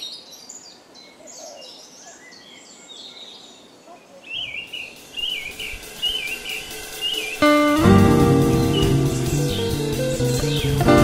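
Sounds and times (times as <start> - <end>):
faint woodland background: 0.0 - 11.0
songbird whistling: 4.3 - 11.0.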